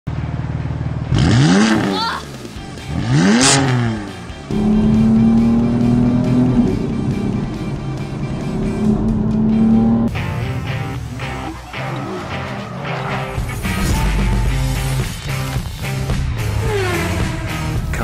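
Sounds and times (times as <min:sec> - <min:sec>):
car engine idling and revving: 0:00.1 - 0:18.0.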